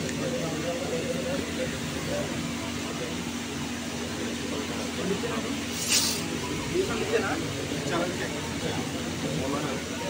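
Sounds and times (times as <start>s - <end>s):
steady mechanical hum: 0.0s - 10.0s
even hiss: 5.6s - 6.3s.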